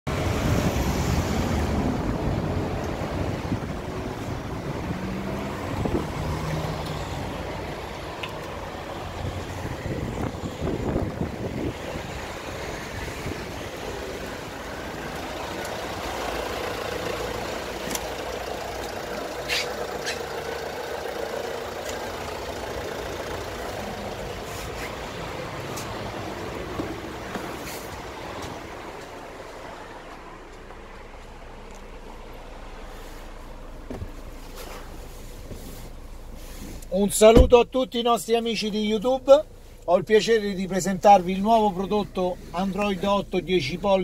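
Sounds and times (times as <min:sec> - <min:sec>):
vehicle rumble and road noise: 0:00.1 - 0:44.0.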